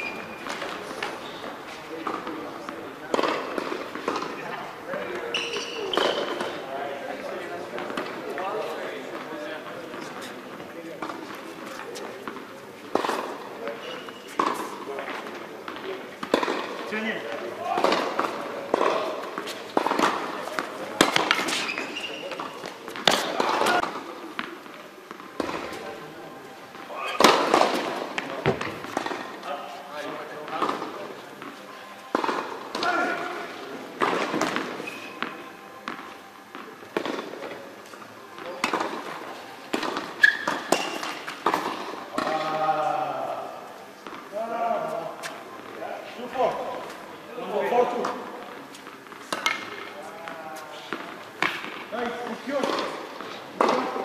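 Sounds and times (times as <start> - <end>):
tennis balls bouncing: 0.0 - 6.6, 7.2 - 26.1, 26.7 - 29.5, 30.3 - 33.3, 34.0 - 37.6, 38.4 - 42.6, 44.0 - 44.3, 47.9 - 54.0
tennis balls hit by racquets: 0.0 - 54.0.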